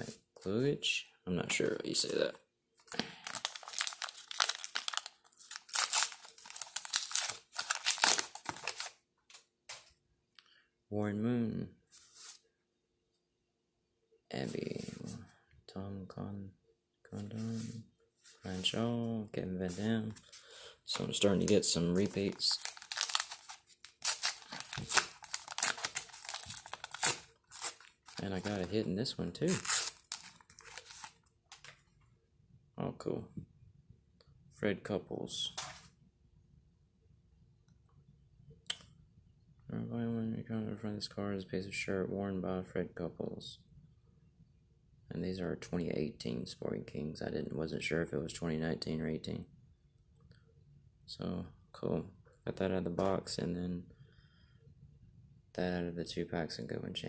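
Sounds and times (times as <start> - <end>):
wrapper crinkling and crackling: 2.9 - 8.9, 20.9 - 28.8, 29.5 - 31.7.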